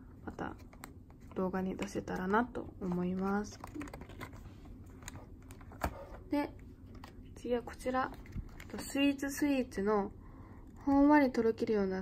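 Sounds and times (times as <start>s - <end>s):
plastic packaging clicks: 0.7s - 4.4s.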